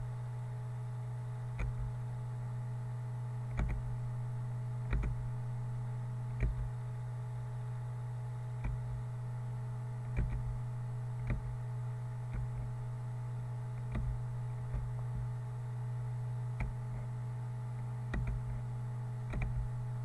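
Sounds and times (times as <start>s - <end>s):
low electrical hum: 0.0s - 20.0s
computer mouse clicking: 3.5s - 3.8s, 4.9s - 5.2s, 10.1s - 10.5s, 12.3s - 12.6s, 13.8s - 14.9s, 18.1s - 18.6s, 19.2s - 19.7s.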